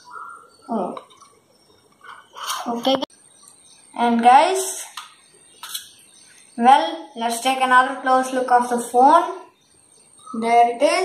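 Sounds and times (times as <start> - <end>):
boy speaking: 0.7 - 1.0, 2.5 - 3.1, 4.0 - 5.0, 6.6 - 9.5, 10.3 - 11.0.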